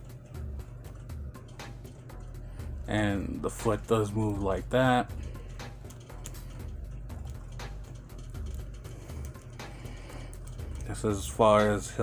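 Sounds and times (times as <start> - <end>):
quiet background music with bass: 0.0 - 12.0.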